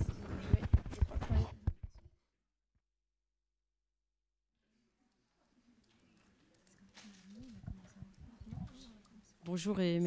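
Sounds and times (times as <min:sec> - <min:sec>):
faint voices talking in a hall: 0:04.6 - 0:10.0.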